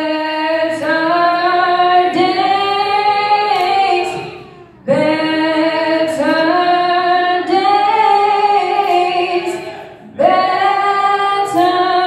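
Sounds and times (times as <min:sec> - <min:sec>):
woman singing gospel unaccompanied: 0:00.0 - 0:12.0.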